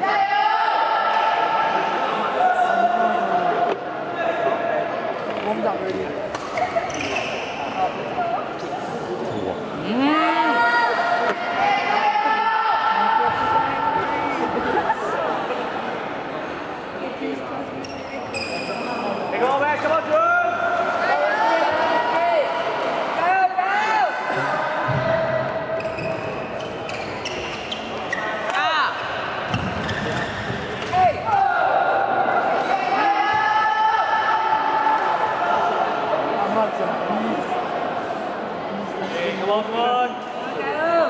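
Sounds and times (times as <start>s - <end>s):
shoes squeaking on court: 6.4s - 7.6s, 25.8s - 28.5s.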